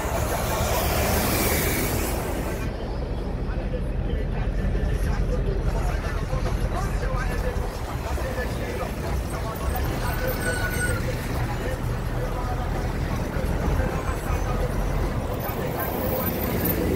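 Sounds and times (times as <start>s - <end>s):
people talking: 0.0s - 16.9s
traffic engine rumble: 0.0s - 16.9s.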